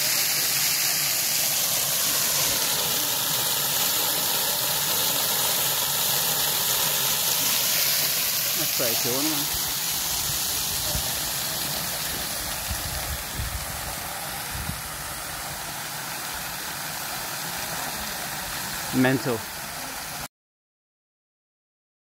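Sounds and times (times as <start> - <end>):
water jet rushing hiss: 0.0 - 20.3.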